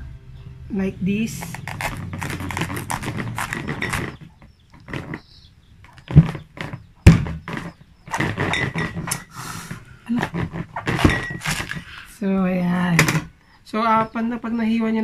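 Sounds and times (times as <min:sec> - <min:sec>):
knife crunching through cabbage: 0:01.3 - 0:05.3, 0:06.0 - 0:09.3, 0:10.1 - 0:12.0.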